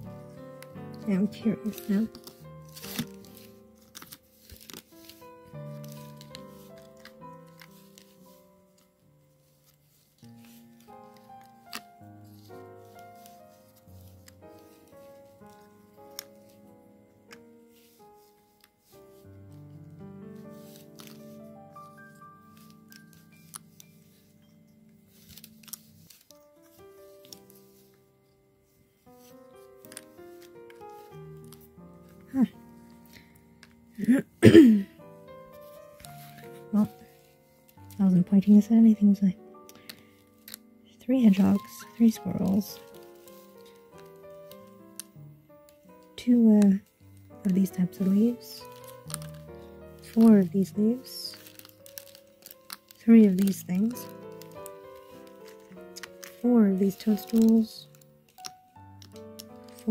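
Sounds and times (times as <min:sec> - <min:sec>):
quiet background music: 0:00.0 - 0:59.9
wooden pieces clicking and tapping: 0:51.3 - 0:59.9.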